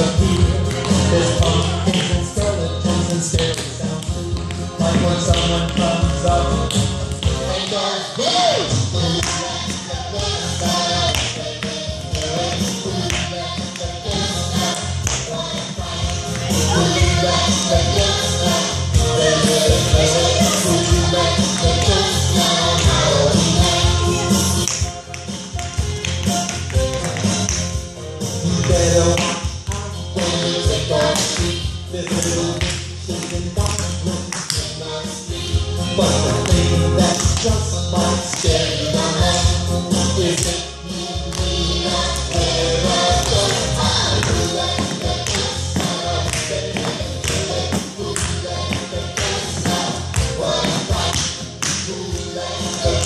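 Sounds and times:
recorded song: 0.0 - 53.0
tap shoes tapping on floor: 44.2 - 51.9.

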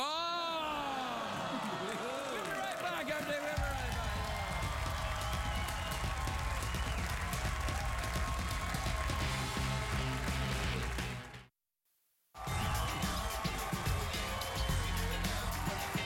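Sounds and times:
audience applauding: 0.6 - 11.5, 12.4 - 16.0
upbeat music with bass line: 8.7 - 11.5, 12.4 - 16.0.

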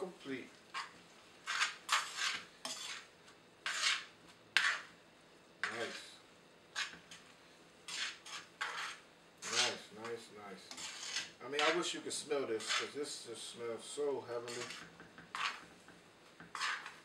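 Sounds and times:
metal tongs scraping a frying pan: 0.8 - 4.9, 7.9 - 11.8, 12.6 - 13.0, 14.4 - 15.6, 16.5 - 17.0.

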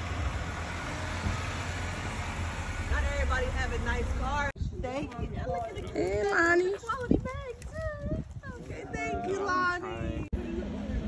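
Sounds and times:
car engine rumbling: 0.0 - 4.6.

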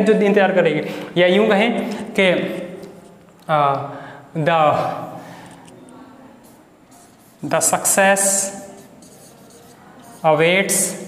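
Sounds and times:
marker pen scratching on whiteboard: 6.4 - 11.0.

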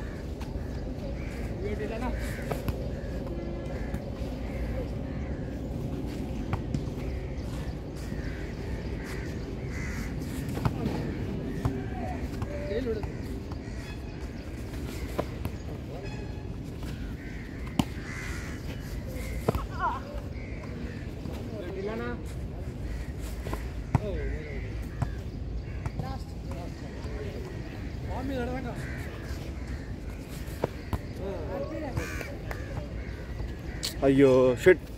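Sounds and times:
bird harsh calls: 0.0 - 34.6
outdoor background noise: 0.0 - 34.9
crow cawing: 8.0 - 14.2, 16.9 - 21.3, 22.8 - 26.0, 26.7 - 34.0.

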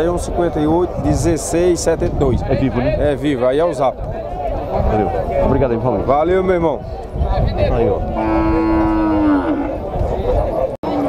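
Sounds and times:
cow mooing: 8.1 - 9.8.

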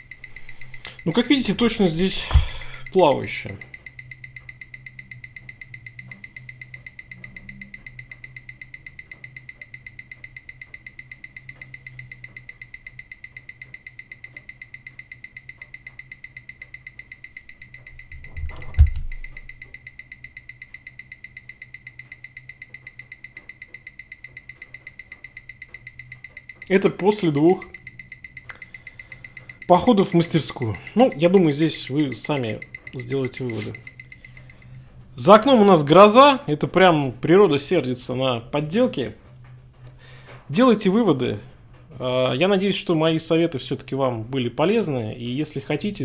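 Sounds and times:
faint high whine: 0.0 - 46.0
watch ticking rapidly: 0.0 - 46.0.

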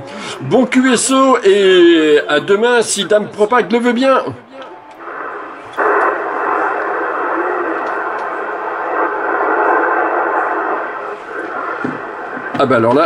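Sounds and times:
radio static hiss: 1.7 - 13.0.

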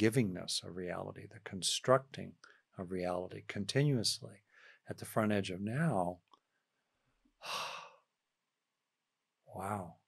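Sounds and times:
man sighing breath: 7.4 - 8.0.

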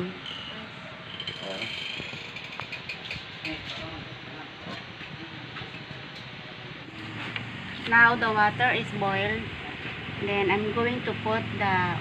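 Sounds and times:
household room noise: 0.0 - 12.0.

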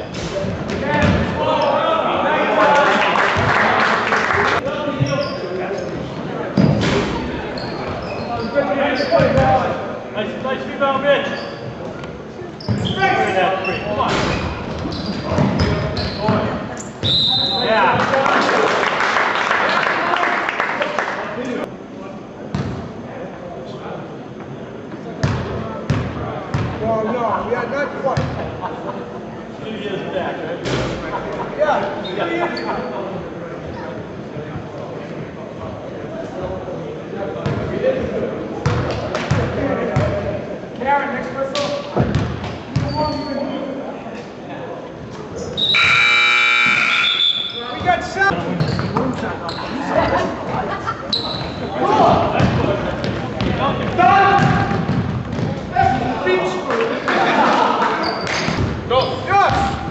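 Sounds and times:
gym buzzer: 45.7 - 47.6.

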